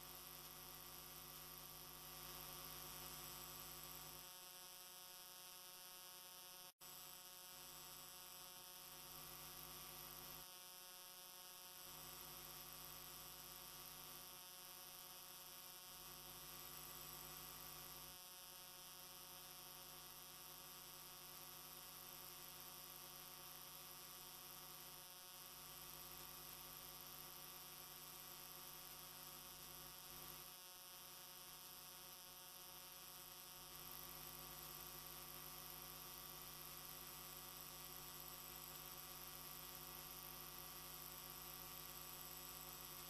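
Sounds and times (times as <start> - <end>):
faint electrical mains hum: 0.0 - 43.0.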